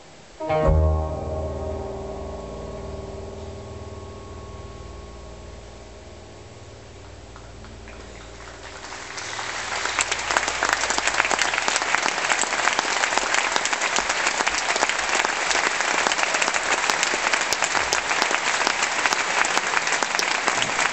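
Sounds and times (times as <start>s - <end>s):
audience applauding: 7.4s - 20.9s.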